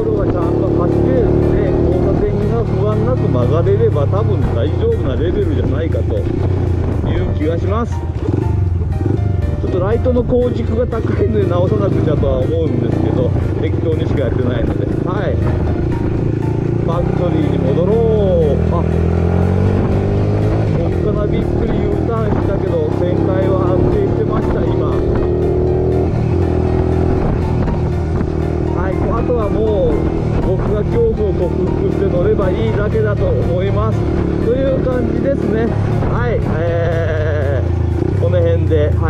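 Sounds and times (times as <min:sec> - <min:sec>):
motorcycle engine revving: 0:00.0 - 0:39.0.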